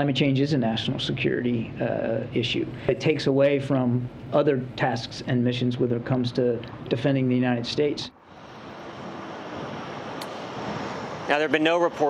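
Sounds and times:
breeze rushing: 0.0s - 12.0s.

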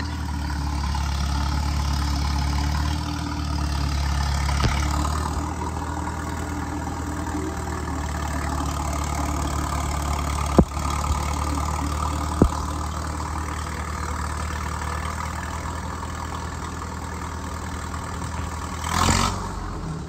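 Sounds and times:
bulldozer engine droning: 0.0s - 20.0s
sharp knocks: 10.5s - 11.3s.

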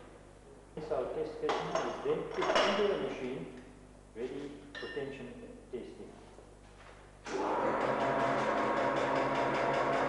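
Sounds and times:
man speaking: 4.2s - 6.3s.

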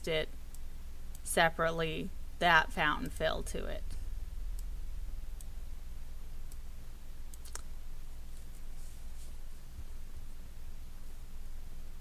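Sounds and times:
steady low hum: 0.0s - 12.0s
computer mouse clicks: 7.3s - 7.7s.

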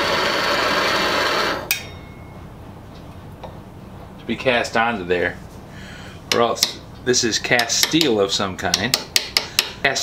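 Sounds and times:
propane torch hissing: 0.0s - 1.7s.

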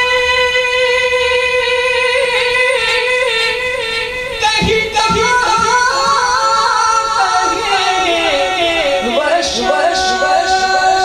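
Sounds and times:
person singing devotional song: 0.0s - 11.0s
soft low thumps: 4.4s - 6.4s.

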